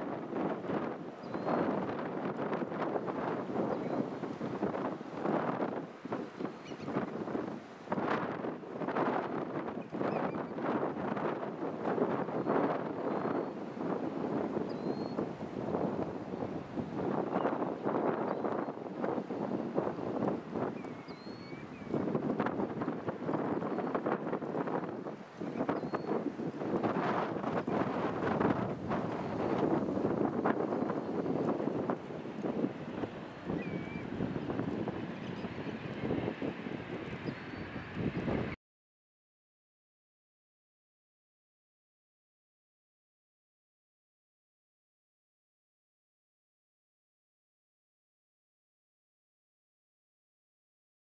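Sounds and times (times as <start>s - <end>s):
wind buffeting microphone: 0.0s - 38.6s.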